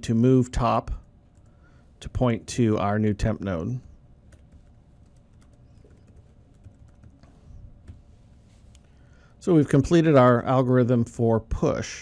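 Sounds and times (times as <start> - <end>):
computer keyboard typing: 4.3 - 7.2.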